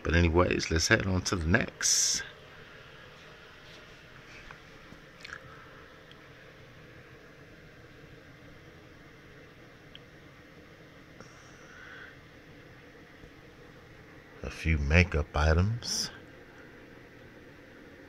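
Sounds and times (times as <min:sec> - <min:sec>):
faint hum and hiss: 0:00.0 - 0:18.0
soft rustle: 0:03.1 - 0:05.4.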